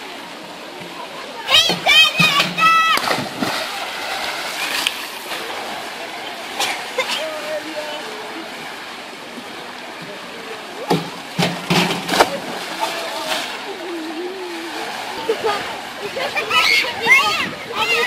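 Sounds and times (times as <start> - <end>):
people chattering: 0.0 - 18.0
person splashing into pool: 2.6 - 5.5.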